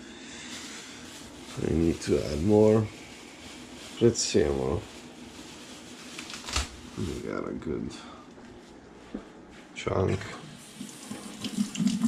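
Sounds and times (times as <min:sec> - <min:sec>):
plastic bag crinkling: 0:00.4 - 0:07.4.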